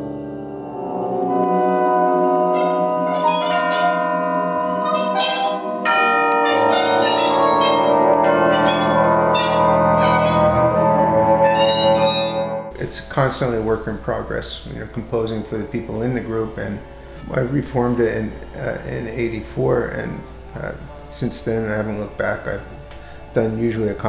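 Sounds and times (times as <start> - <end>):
ringing struck notes: 0.0 - 13.8
jazz ensemble wind tones: 1.2 - 14.0.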